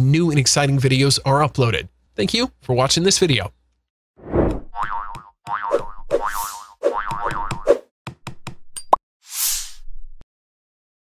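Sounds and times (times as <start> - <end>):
cartoon springy boings: 4.7 - 7.8.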